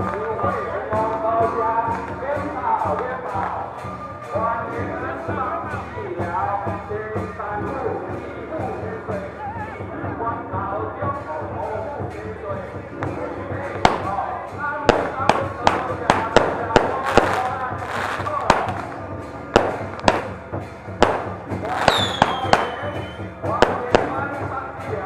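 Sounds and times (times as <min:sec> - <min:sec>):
music: 0:00.0 - 0:25.0
voices: 0:00.0 - 0:25.0
firecrackers banging: 0:12.9 - 0:25.0.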